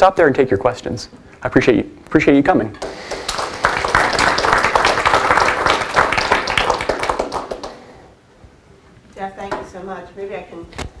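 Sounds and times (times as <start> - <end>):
audience clapping: 2.8 - 8.0.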